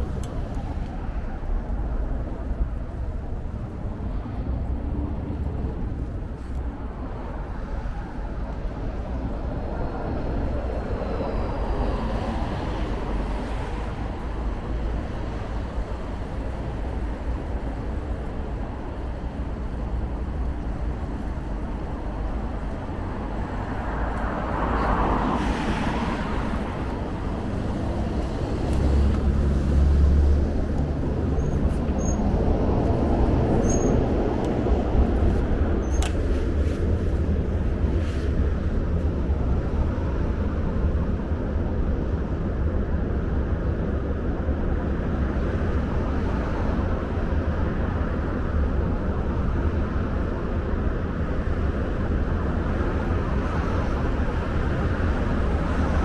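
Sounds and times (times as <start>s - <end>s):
road traffic noise: 0.0s - 56.0s.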